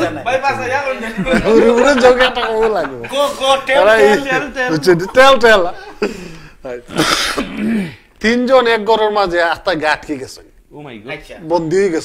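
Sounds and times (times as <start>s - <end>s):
men talking: 0.0s - 12.0s
man clearing his throat: 6.9s - 8.1s.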